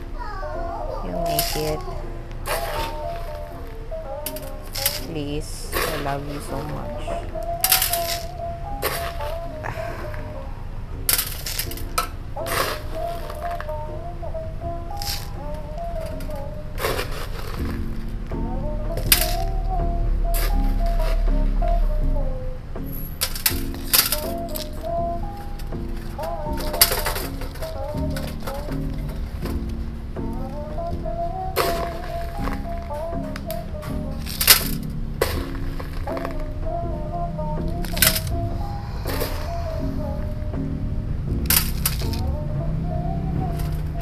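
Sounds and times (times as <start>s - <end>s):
soft background music: 0.0s - 44.0s.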